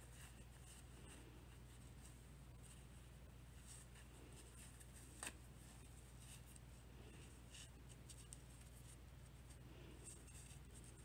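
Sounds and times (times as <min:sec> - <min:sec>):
low steady hum: 0:00.0 - 0:11.0
rustling of stuffed fabric ball: 0:00.0 - 0:11.0.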